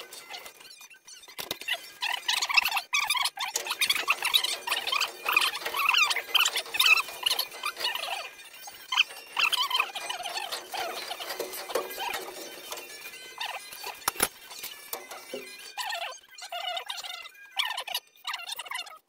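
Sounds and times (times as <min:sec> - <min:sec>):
sped-up high-pitched squeaks: 0:00.0 - 0:19.0.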